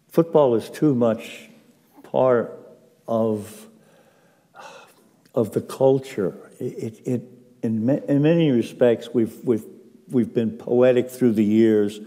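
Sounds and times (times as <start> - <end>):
man speaking: 0.0 - 3.8, 4.6 - 12.0
short breath in: 3.8 - 5.1.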